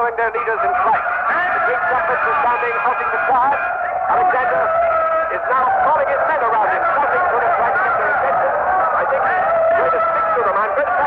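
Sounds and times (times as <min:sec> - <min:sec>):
men shouting and calling: 0:00.0 - 0:11.0.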